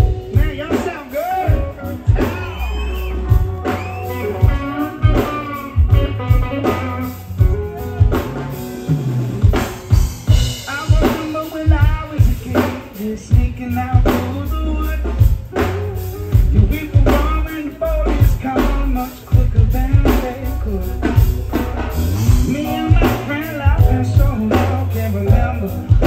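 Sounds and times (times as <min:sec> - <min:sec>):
person singing: 0:00.0 - 0:08.6, 0:10.3 - 0:26.0
reggae band playing: 0:00.0 - 0:26.0.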